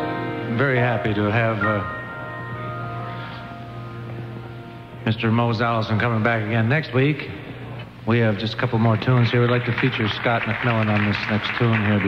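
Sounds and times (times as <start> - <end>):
bell-like chord: 0.0 - 6.1
steady low hum: 0.0 - 12.0.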